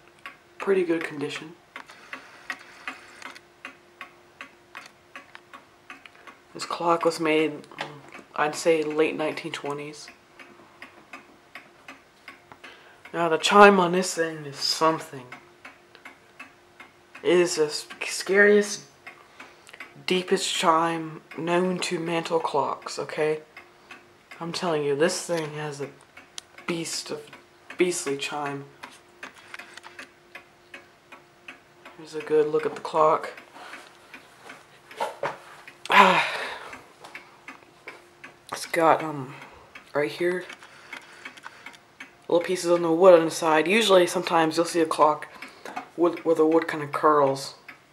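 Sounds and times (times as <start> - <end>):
mantel clock ticking: 0.0 - 47.9
person saying ah: 35.9 - 36.7.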